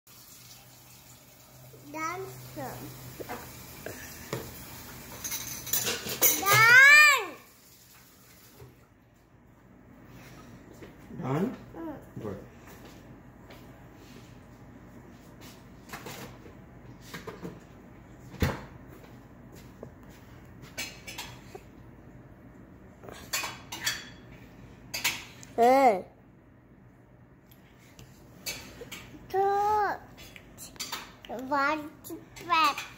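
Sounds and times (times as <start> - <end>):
toddler's voice: 6.2 - 7.5, 11.7 - 12.2, 29.3 - 30.1.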